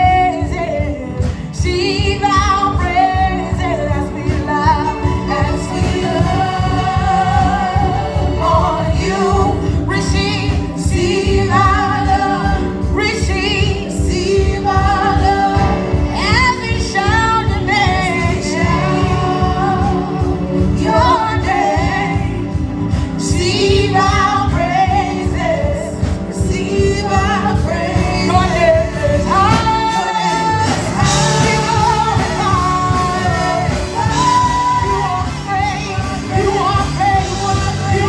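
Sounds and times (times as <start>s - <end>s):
choir singing gospel: 0.0s - 38.0s
live band with keyboard: 0.0s - 38.0s
woman singing lead: 0.0s - 38.0s.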